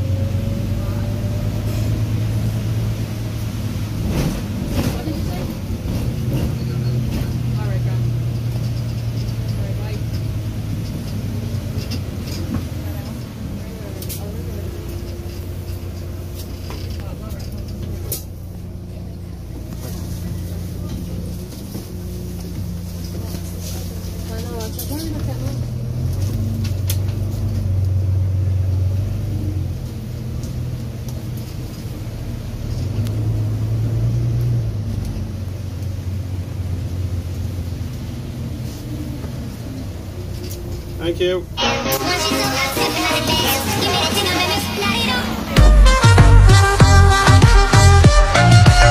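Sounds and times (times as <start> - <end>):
bus engine drone changing gears: 0.0 - 48.9
faint passenger voices: 0.3 - 3.1, 3.8 - 32.3, 37.4 - 45.6.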